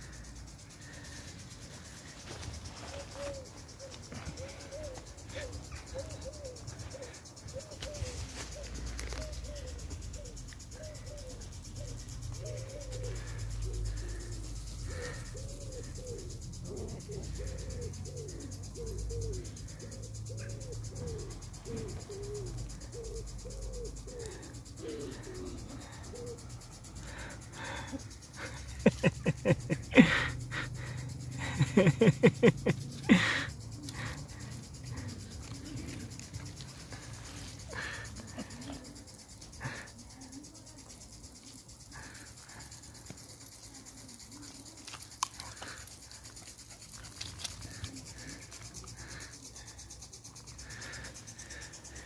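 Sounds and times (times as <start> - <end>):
dove cooing: 0.0 - 44.8.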